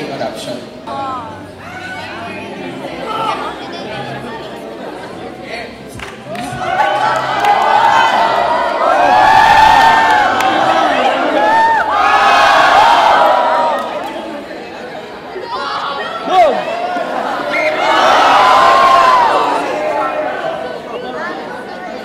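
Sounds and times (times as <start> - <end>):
crowd screaming and cheering: 6.2 - 14.6, 15.4 - 21.1.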